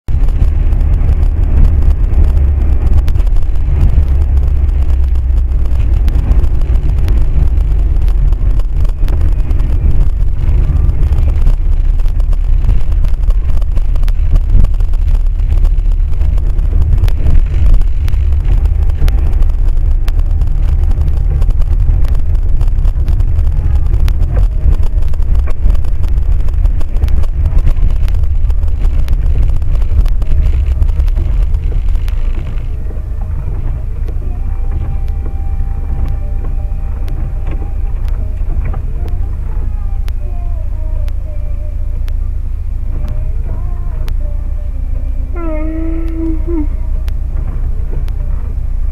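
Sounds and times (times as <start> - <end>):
car engine and tyre rumble: 0.0 - 48.9.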